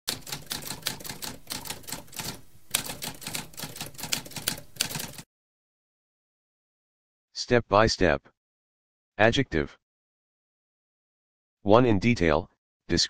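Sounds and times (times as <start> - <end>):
typewriter keys clacking: 0.1 - 5.2.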